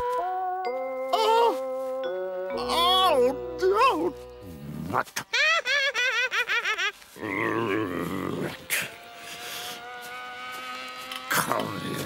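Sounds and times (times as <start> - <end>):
model plane engine buzzing: 8.1 - 12.0.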